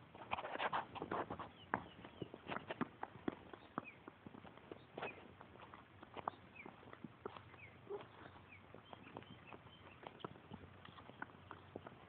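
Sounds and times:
footsteps on asphalt: 0:00.0 - 0:12.0
bird chirps: 0:06.2 - 0:06.8, 0:07.5 - 0:11.2.

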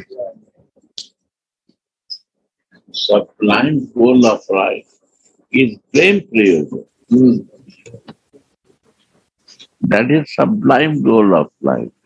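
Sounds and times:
man speaking: 0:00.0 - 0:00.5, 0:02.8 - 0:04.9, 0:05.5 - 0:08.1, 0:09.6 - 0:12.0
faint high hiss: 0:02.1 - 0:12.0.

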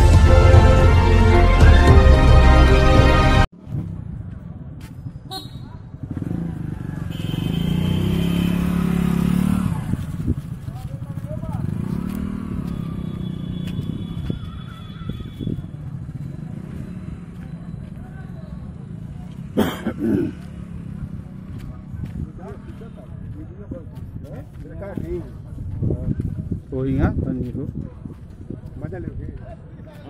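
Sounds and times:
motorcycle engine passing: 0:05.8 - 0:23.4
people talking: 0:10.6 - 0:11.8, 0:17.3 - 0:30.0.

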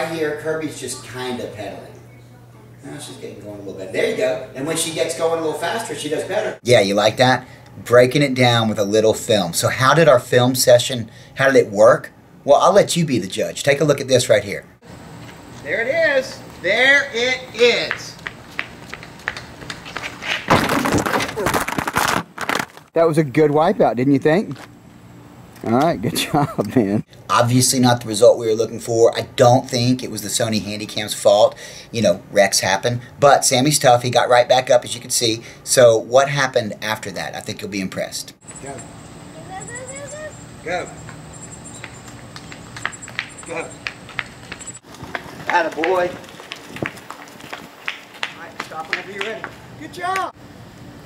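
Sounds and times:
bicycle scraping clatter on concrete: 0:18.0 - 0:22.9, 0:41.8 - 0:49.6
insects buzzing: 0:38.0 - 0:51.0.

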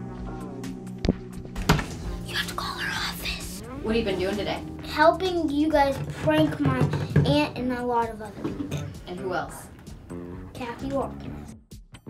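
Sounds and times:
soft background music: 0:00.0 - 0:11.7
person whispering: 0:02.3 - 0:03.8.

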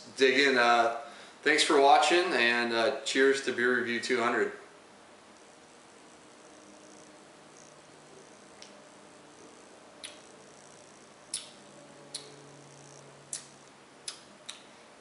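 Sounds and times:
low steady hum: 0:00.0 - 0:15.0
lip smacks and tongue clicks: 0:10.0 - 0:10.3, 0:11.3 - 0:12.4, 0:13.3 - 0:14.7.

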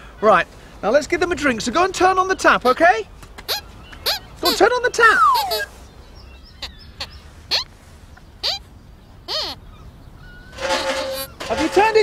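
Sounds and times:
high squeaky puppet voice: 0:03.5 - 0:05.7, 0:08.4 - 0:08.6, 0:09.3 - 0:09.6.

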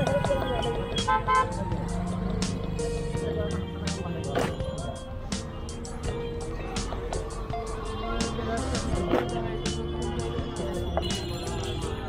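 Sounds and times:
low rumble of passing vehicles: 0:00.0 - 0:12.0
vehicle horn toots: 0:00.4 - 0:01.7, 0:07.9 - 0:12.0.

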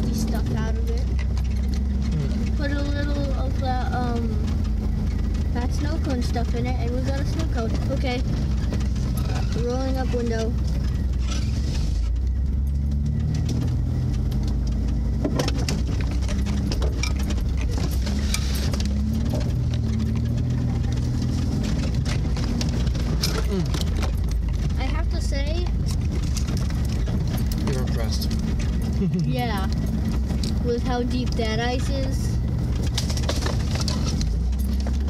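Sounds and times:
rattles and knocks from vehicle body: 0:00.0 - 0:35.0
vehicle engine running at low speed: 0:00.0 - 0:35.0.

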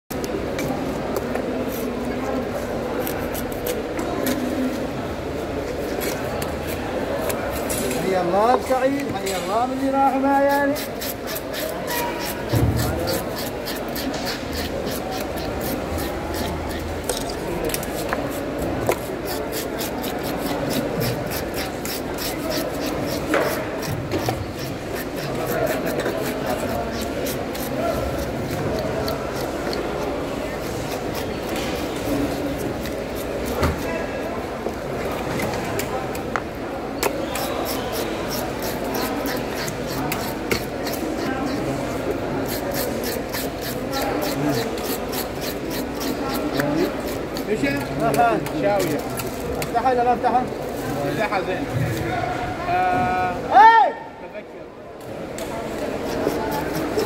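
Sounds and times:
fish scaler rasping scales: 0:10.4 - 0:33.9, 0:37.0 - 0:48.0, 0:55.9 - 0:57.0.

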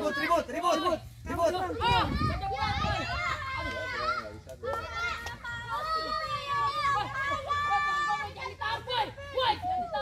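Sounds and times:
children talking and calling out: 0:00.0 - 0:10.0.

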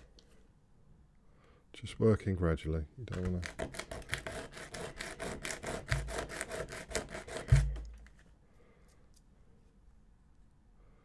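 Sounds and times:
plastic scraping on sandpaper: 0:03.1 - 0:08.2
dull thumps: 0:07.4 - 0:08.1.

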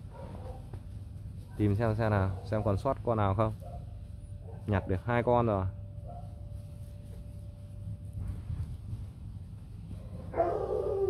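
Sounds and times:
puppy yelping: 0:10.3 - 0:11.0.

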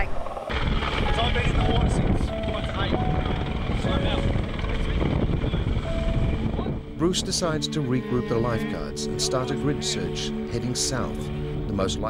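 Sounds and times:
wind: 0:00.0 - 0:11.8
boat motor rumbling: 0:00.0 - 0:12.0
voices: 0:06.6 - 0:12.0.

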